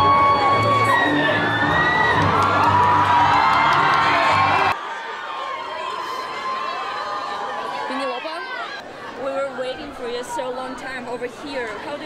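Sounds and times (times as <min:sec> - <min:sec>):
crowd screaming and cheering: 0:00.0 - 0:10.2.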